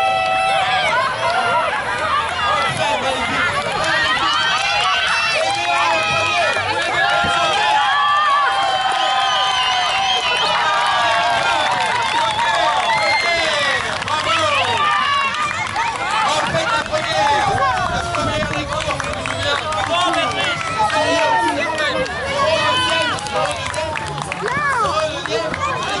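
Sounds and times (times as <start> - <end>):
crowd shouting: 0.0 - 18.4.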